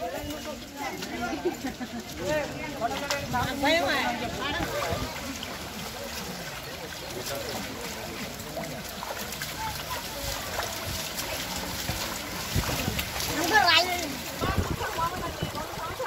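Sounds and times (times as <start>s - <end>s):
feet sloshing through mud: 0.0s - 16.0s
people talking: 0.0s - 16.0s.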